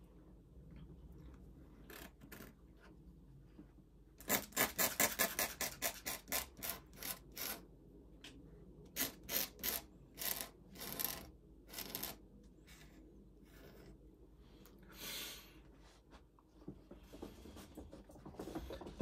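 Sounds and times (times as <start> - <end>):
pen nib scratching paper: 4.2 - 7.6.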